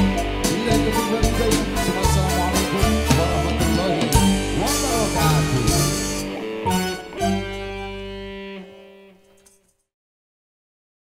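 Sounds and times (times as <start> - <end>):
live band holding a chord: 0.0 - 9.3
electric guitars ringing: 0.0 - 9.8.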